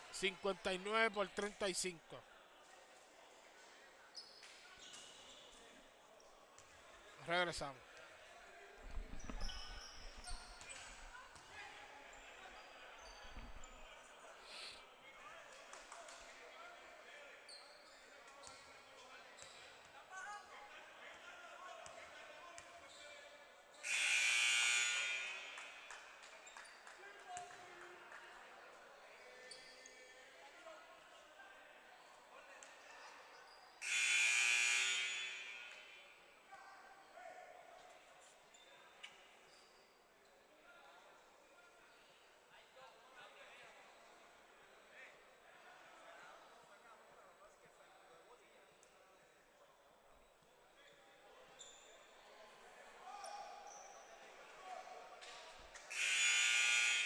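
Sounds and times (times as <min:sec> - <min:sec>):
gym buzzer: 0:23.8 - 0:25.8, 0:33.8 - 0:36.0, 0:55.9 - 0:57.0.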